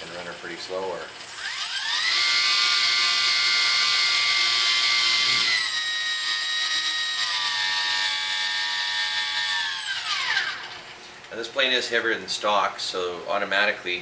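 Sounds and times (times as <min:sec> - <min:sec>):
electric motor high whine: 0:00.0 - 0:11.0.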